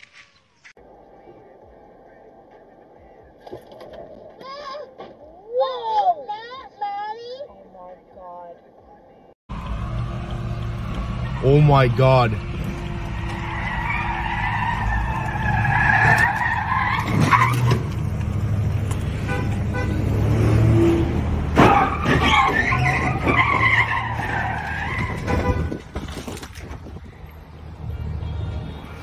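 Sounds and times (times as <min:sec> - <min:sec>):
engine rumble: 0:08.0 - 0:29.0
tires squealing: 0:09.6 - 0:27.1.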